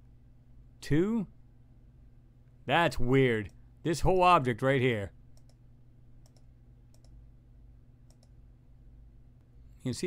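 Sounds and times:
low steady hum: 0:00.0 - 0:10.0
computer mouse clicks: 0:05.4 - 0:05.6, 0:06.2 - 0:07.2, 0:08.1 - 0:08.4.

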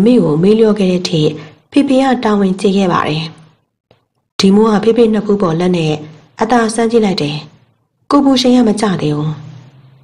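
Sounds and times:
woman narrating: 0:00.0 - 0:03.6, 0:04.4 - 0:09.9.

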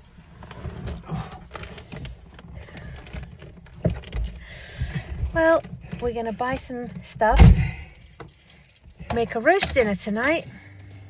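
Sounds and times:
small clinks: 0:05.9 - 0:11.0
dull thump: 0:07.2 - 0:07.9
keys jingling: 0:07.2 - 0:11.0.

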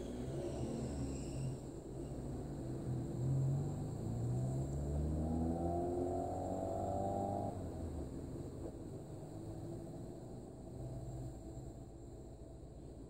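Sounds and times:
car engine accelerating: 0:00.0 - 0:11.8.

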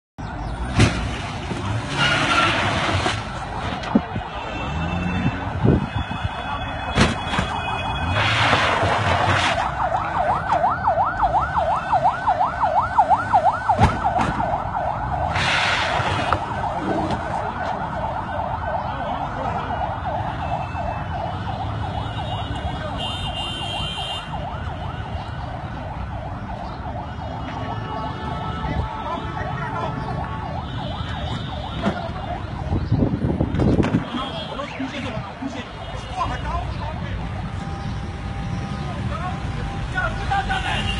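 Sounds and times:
electronic siren alarm warbling: 0:03.3 - 0:08.3.

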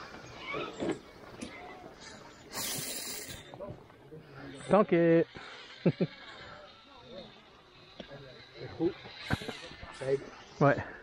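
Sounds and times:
short hiss: 0:02.5 - 0:03.5.

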